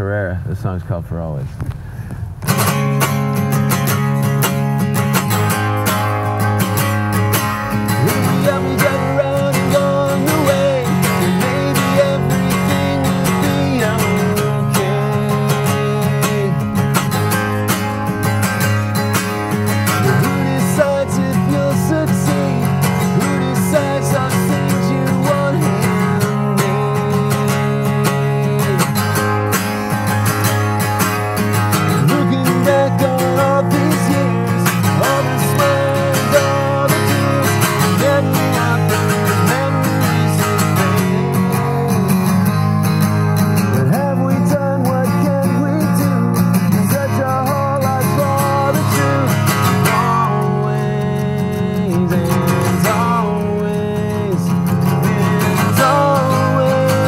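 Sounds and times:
acoustic guitar strumming: 1.6 - 57.0
man singing: 7.6 - 18.7, 19.5 - 30.4, 31.5 - 42.7, 43.6 - 57.0.

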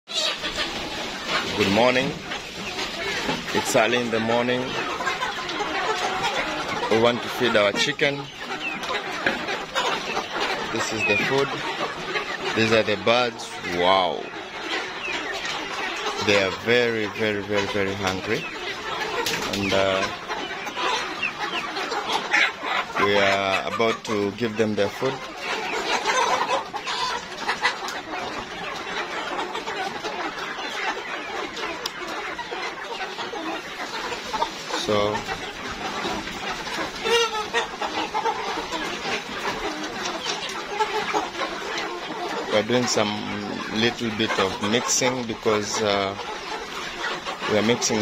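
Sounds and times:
hens clucking and squawking: 0.1 - 48.0.

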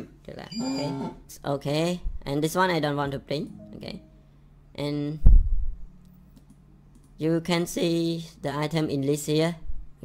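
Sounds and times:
strong low thump: 5.2 - 5.8.

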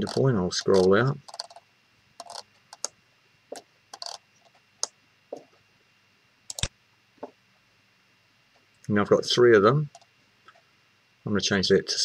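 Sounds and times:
computer mouse clicking: 0.0 - 1.6, 2.2 - 2.9, 3.9 - 4.2, 6.5 - 6.7
mouse scroll wheel ticking: 0.0 - 1.6, 2.2 - 2.9, 3.9 - 4.2.

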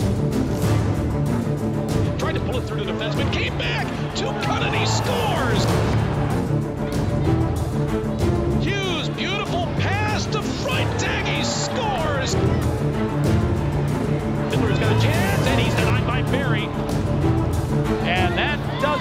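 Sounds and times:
voices: 8.6 - 12.6.

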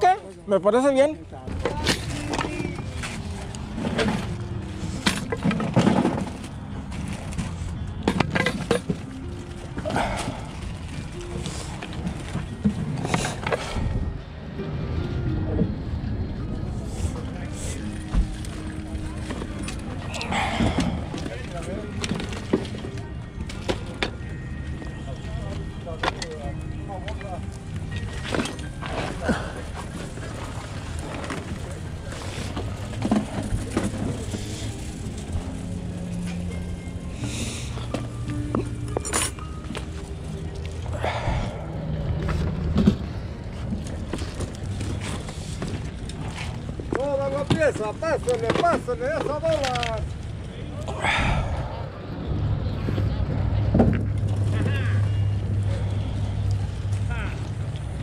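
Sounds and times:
music playing: 0.2 - 58.0
people talking: 56.6 - 57.5.

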